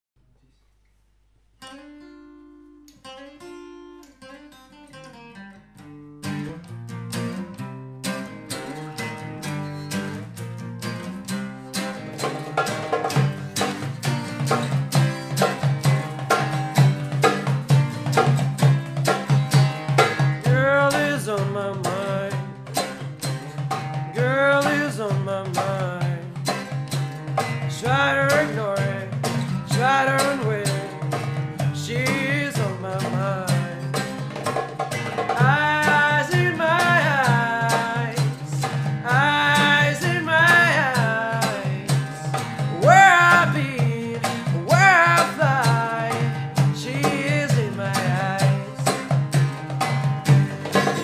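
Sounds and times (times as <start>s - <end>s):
acoustic guitar: 0.4s - 51.0s
goblet drum rhythm: 11.7s - 51.0s
man singing: 20.4s - 22.9s, 24.1s - 26.6s, 27.6s - 34.2s, 35.2s - 49.3s, 50.7s - 51.0s.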